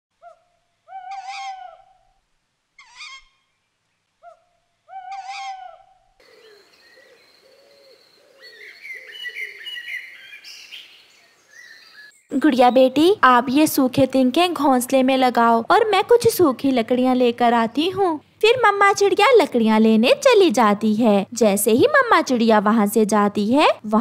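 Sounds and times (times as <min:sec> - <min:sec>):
loud pitched bird calls: 0:00.2 - 0:02.0, 0:02.8 - 0:03.5, 0:04.2 - 0:12.8
small birds chirping: 0:02.8 - 0:13.2.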